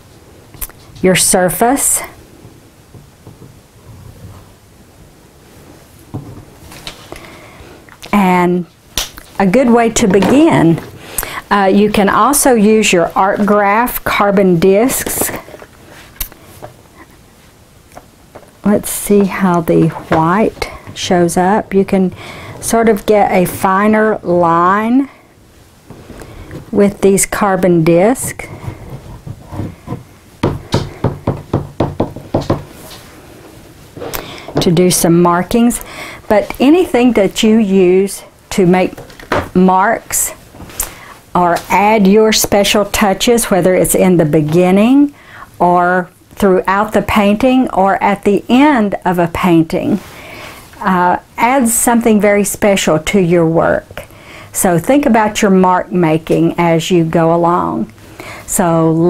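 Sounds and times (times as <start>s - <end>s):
crayon scratching on board: 27.9s - 30.0s.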